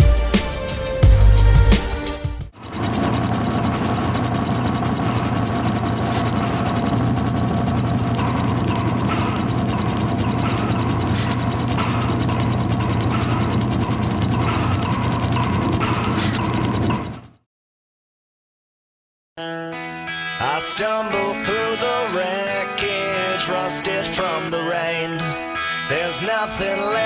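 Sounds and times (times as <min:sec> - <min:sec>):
steady low hum: 0:02.6 - 0:17.1
rapid even mechanical clicking: 0:02.6 - 0:17.4.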